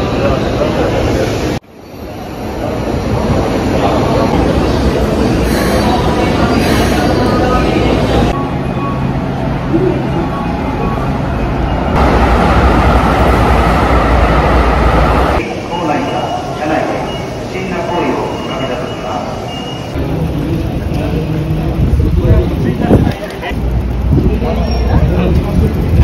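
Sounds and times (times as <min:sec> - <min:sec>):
indistinct voices: 0:00.0 - 0:26.0
train rumbling: 0:00.0 - 0:26.0.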